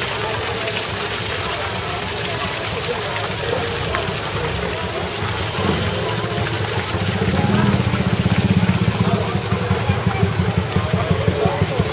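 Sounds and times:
crowd voices: 0.0 - 11.9.

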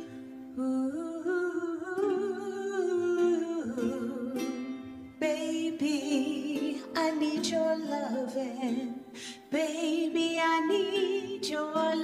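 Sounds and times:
ukulele: 0.0 - 12.0
woman singing: 0.0 - 12.0.

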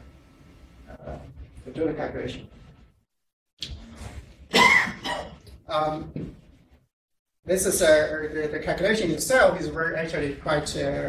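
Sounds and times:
man coughing: 4.5 - 5.4.

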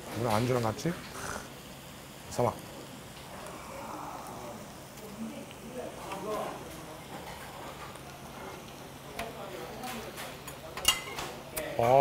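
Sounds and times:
faint steady hum: 0.0 - 7.1.

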